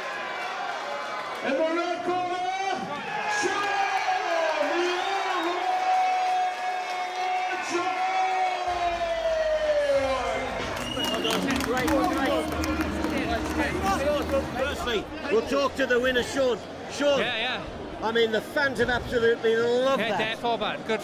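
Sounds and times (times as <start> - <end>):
crowd cheering: 0.0 - 15.2.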